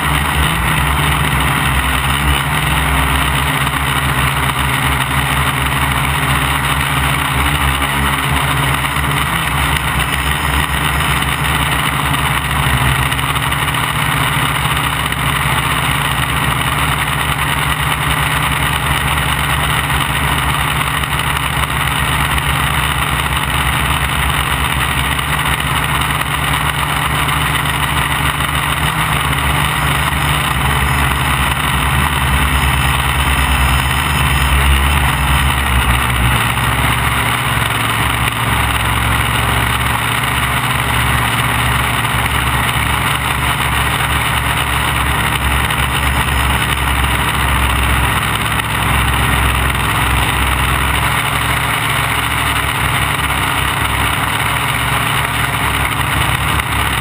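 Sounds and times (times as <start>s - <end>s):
drone motors humming: 0.0s - 57.0s.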